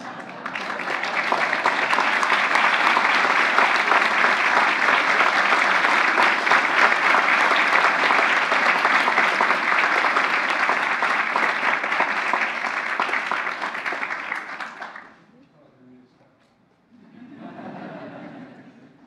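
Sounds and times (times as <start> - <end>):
audience applauding: 0.0 - 15.2.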